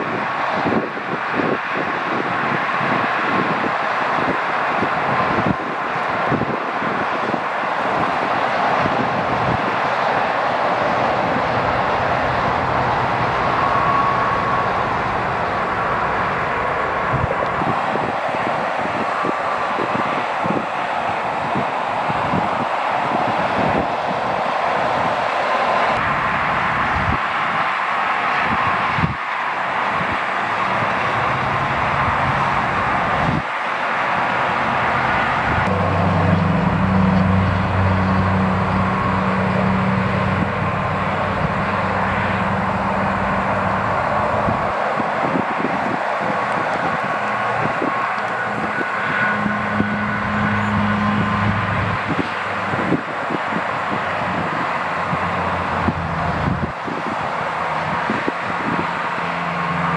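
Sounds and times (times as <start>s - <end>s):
freeway traffic rushing: 0.0s - 59.9s.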